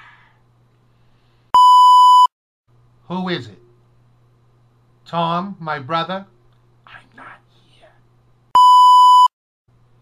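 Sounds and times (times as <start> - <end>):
censor bleep: 1.6 - 2.3, 8.6 - 9.3.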